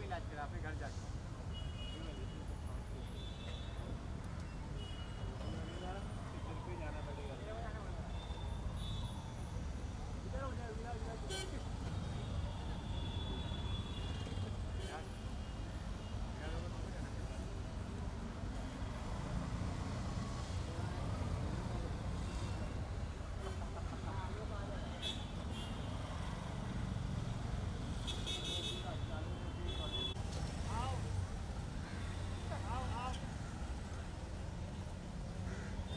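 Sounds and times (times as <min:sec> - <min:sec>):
city street traffic rumble: 0:00.0 - 0:35.9.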